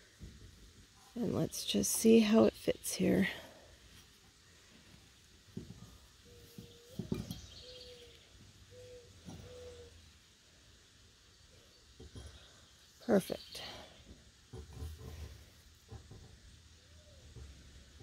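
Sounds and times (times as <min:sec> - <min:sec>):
bird hooting: 0:06.3 - 0:10.0.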